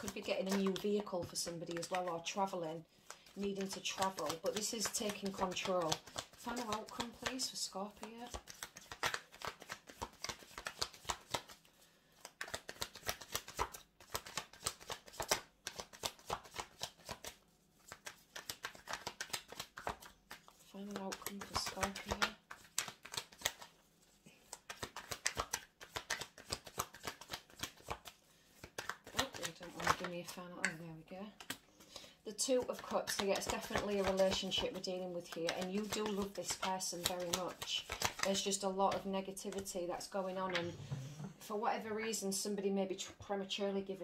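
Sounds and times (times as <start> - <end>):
cards being shuffled: 0.0 - 30.8, 31.4 - 40.7.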